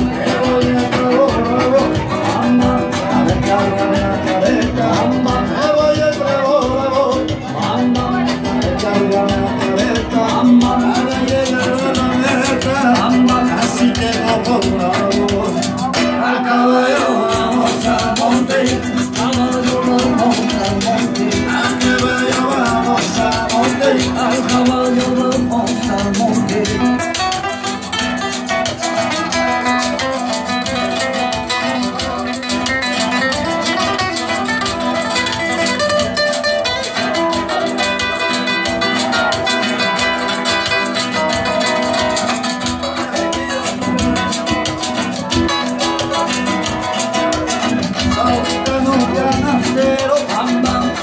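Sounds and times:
acoustic guitars strumming: 0:00.0 - 0:51.0.

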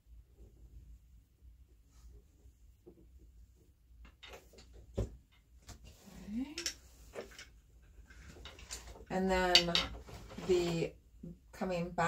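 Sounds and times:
wooden clicks from a loom: 0:06.5 - 0:07.5, 0:08.2 - 0:10.4.

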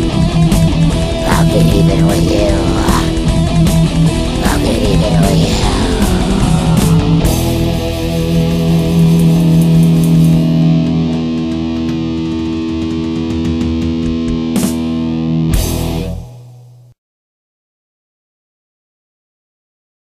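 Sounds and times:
distorted electric guitar chord: 0:00.0 - 0:17.0.

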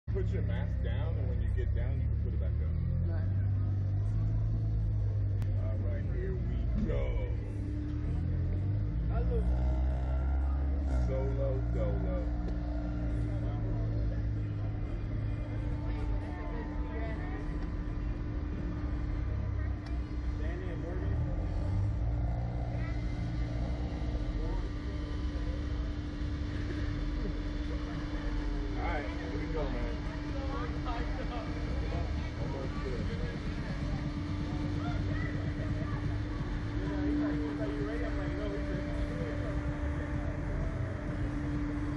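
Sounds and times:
faint voices: 0:00.0 - 0:41.9
low mechanical hum: 0:00.0 - 0:41.9
low rumble: 0:00.0 - 0:41.9.

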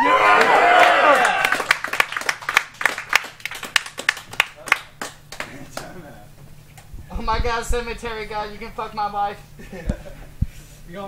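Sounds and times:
sparse audience clapping: 0:00.0 - 0:06.0.

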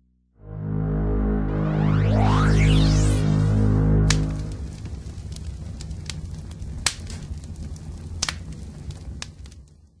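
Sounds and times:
low rumbling drone: 0:00.0 - 0:06.6
sharp crackling snaps: 0:04.0 - 0:10.0.

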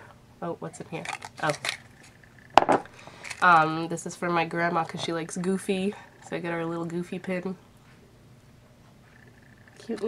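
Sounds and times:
small cup clacking and rattling: 0:00.9 - 0:03.4.

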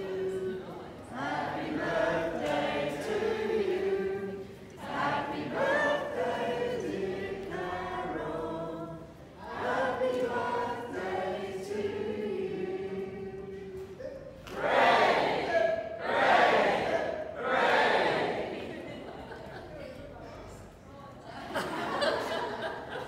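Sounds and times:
group singing in unison: 0:00.0 - 0:18.9.

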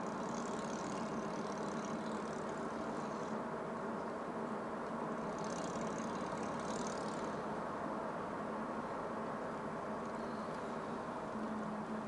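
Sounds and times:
car engine and tyre noise: 0:00.0 - 0:12.0
steady low hum: 0:00.0 - 0:12.0.

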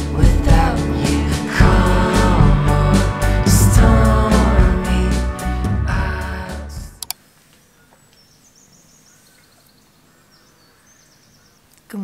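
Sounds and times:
background music: 0:00.0 - 0:07.1
short clicks: 0:07.0 - 0:07.2
faint high bird chirps: 0:07.6 - 0:12.0.

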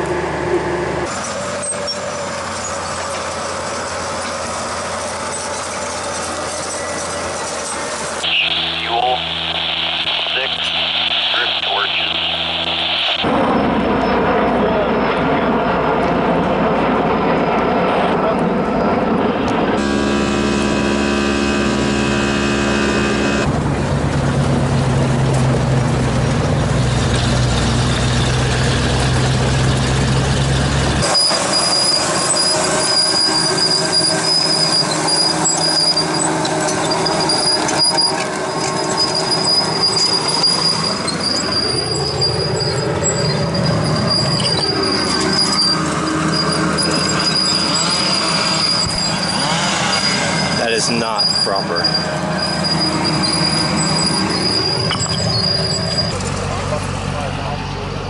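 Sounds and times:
diesel engine running: 0:00.0 - 0:58.0
heavy engine drone with held tones: 0:00.0 - 0:58.0
steel tracks squealing: 0:01.0 - 0:15.9, 0:19.8 - 0:23.5, 0:27.0 - 0:57.0.

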